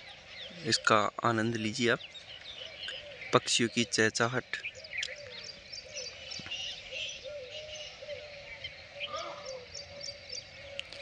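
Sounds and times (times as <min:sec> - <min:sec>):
birds chirping high calls: 0:00.0 - 0:11.0
lower wavering bird calls: 0:00.0 - 0:11.0.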